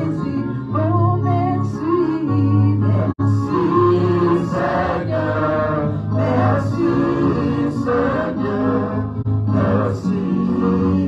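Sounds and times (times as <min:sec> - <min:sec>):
voices singing gospel: 0:00.0 - 0:11.0.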